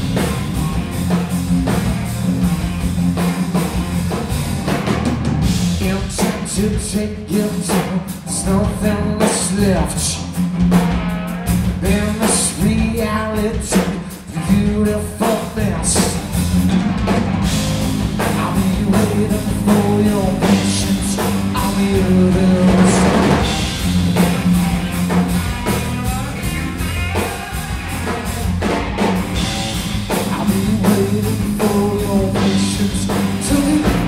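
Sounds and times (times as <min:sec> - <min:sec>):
bass guitar: 0:00.0 - 0:34.0
drum kit: 0:00.0 - 0:34.0
electric guitar: 0:00.0 - 0:34.0
man singing: 0:05.7 - 0:10.4, 0:11.8 - 0:16.4, 0:18.2 - 0:23.5, 0:25.6 - 0:28.8, 0:29.4 - 0:34.0.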